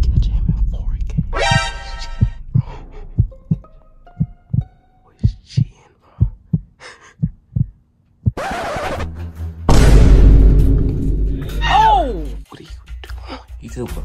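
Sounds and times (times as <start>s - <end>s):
heartbeat thumps: 0.0s - 8.4s.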